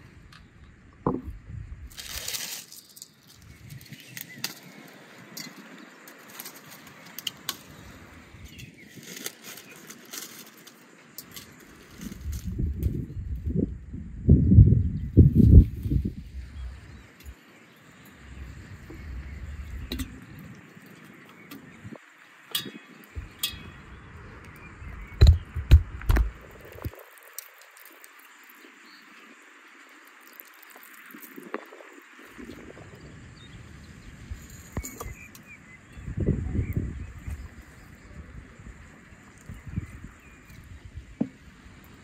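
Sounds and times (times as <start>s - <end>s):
outdoor background noise: 0.0s - 42.0s
dull thumps: 25.1s - 26.4s.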